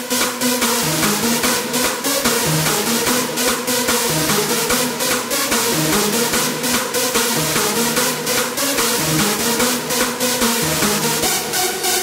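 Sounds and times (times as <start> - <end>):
fast kick drum: 0.0 - 11.8
bass line: 0.1 - 12.0.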